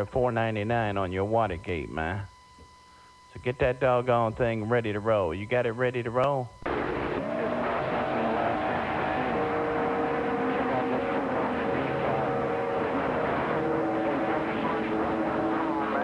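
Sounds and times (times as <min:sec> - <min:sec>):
radio static hiss: 0:00.0 - 0:02.4, 0:03.0 - 0:16.0.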